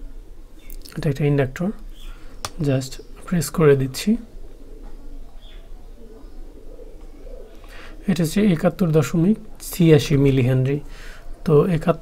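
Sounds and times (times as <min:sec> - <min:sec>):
faint bird cooing: 0:00.0 - 0:12.0
steady low hum: 0:00.0 - 0:12.0.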